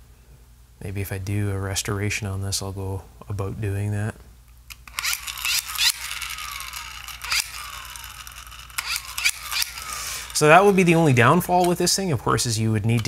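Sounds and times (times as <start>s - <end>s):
hand dynamo flashlight whirring: 4.7s - 11.8s.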